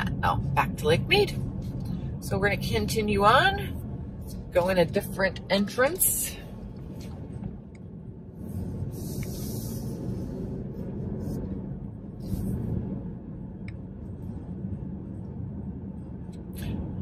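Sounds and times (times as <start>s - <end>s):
engine and tyres rumbling: 0.0s - 17.0s.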